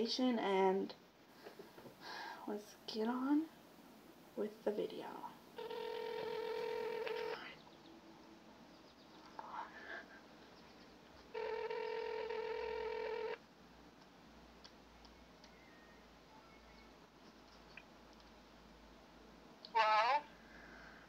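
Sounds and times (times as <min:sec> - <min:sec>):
telephone ringback tone: 0:05.6 - 0:07.4, 0:11.4 - 0:13.4.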